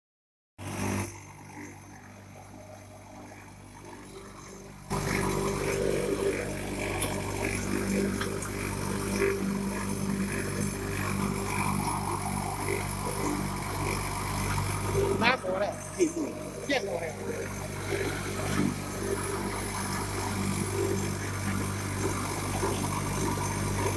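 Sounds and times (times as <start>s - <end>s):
machine humming: 0.6s - 23.9s.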